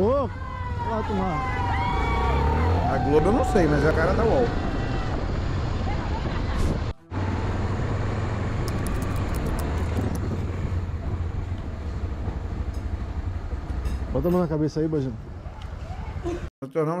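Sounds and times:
road and wind noise: 0:00.0 - 0:16.5
motorcycle engine running: 0:07.1 - 0:16.2.

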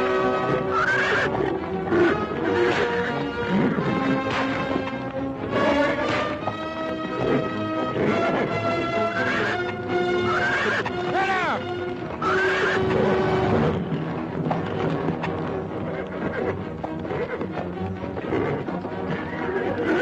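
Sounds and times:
film score music: 0:00.0 - 0:20.0
horse whinnying: 0:00.0 - 0:20.0.

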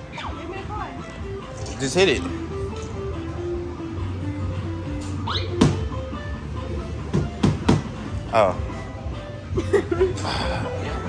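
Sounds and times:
electronic arcade game music: 0:02.3 - 0:11.0.

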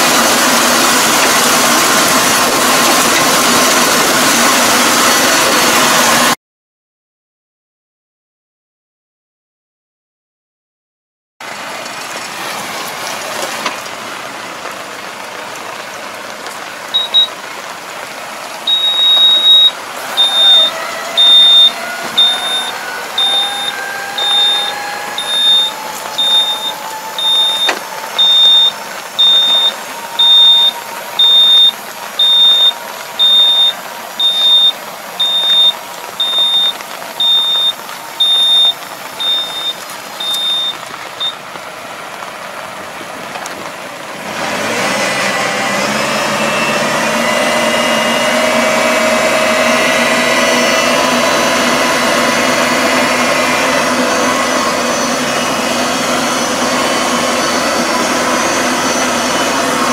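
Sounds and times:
tractor engine: 0:00.0 - 0:06.4, 0:11.4 - 0:59.9
high electronic warning beep: 0:17.0 - 0:17.3, 0:18.7 - 0:41.4.

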